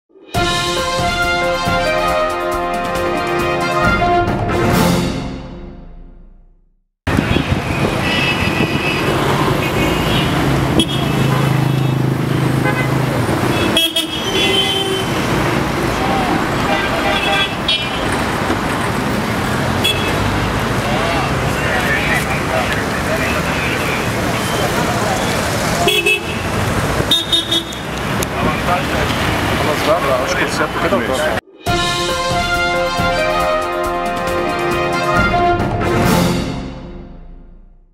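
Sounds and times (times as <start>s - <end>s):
road traffic engines: 7.1s - 31.4s
car horn toots: 7.2s - 15.2s, 16.6s - 18.1s, 19.8s - 20.2s, 25.8s - 26.5s, 27.1s - 27.9s.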